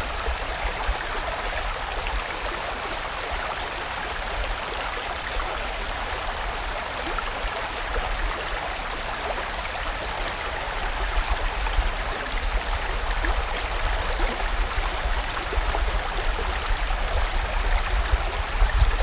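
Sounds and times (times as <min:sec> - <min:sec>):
mountain stream rushing: 0:00.0 - 0:19.0.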